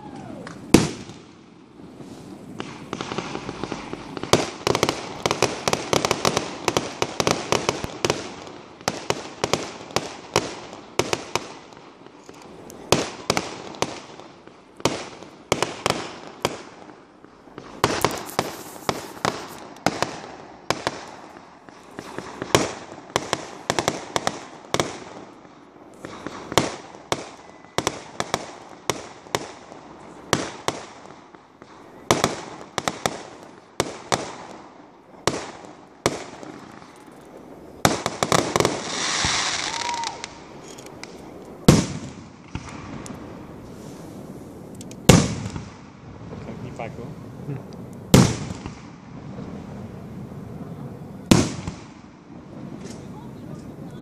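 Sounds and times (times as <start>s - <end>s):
firework shells bursting: 0.0s - 54.0s.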